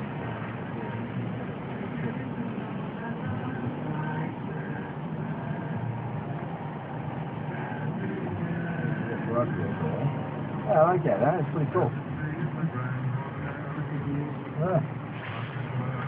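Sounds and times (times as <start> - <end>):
car engine and road noise: 0.0 - 16.0.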